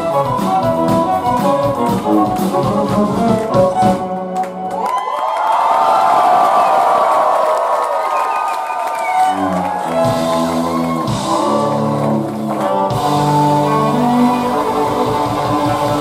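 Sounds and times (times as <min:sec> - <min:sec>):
live band music: 0:00.0 - 0:05.0, 0:08.8 - 0:16.0
crowd cheering: 0:04.3 - 0:16.0.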